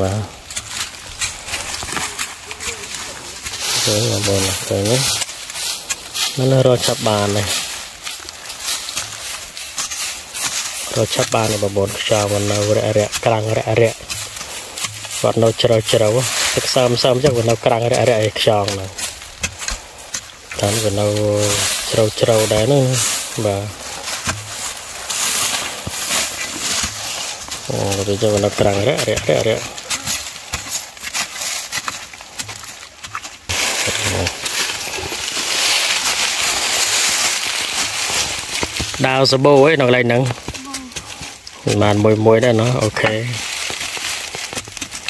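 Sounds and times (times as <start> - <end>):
dry leaves rustling and crackling: 0.0 - 45.0
hoe scraping and chopping soil: 0.0 - 45.0.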